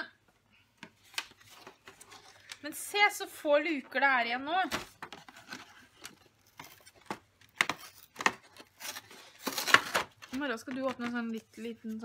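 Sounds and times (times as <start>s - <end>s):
cardboard tearing: 5.2s - 10.4s.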